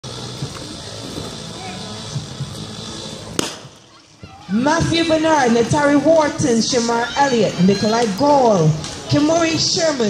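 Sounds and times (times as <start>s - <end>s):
murmur of spectators: 0.0s - 10.0s
starting gun crack: 3.3s - 3.8s.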